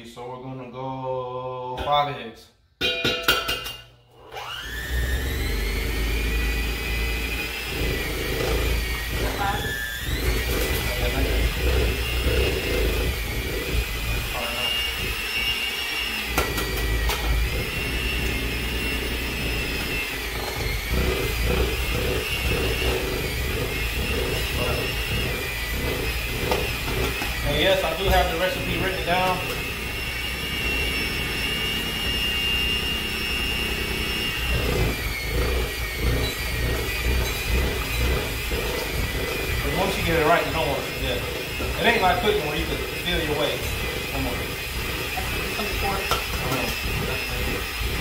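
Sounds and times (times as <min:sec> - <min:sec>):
electric hand mixer whine: 0:04.1 - 0:48.0.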